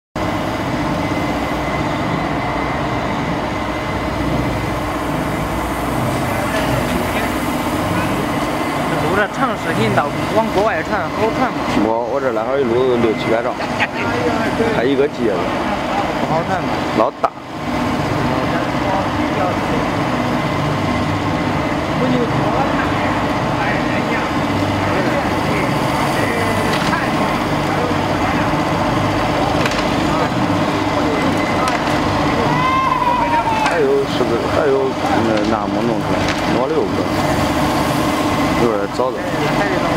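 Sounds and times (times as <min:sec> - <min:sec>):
high whine: 0:00.2 - 0:39.9
ride machinery hum: 0:00.2 - 0:39.9
voices talking: 0:05.0 - 0:39.9.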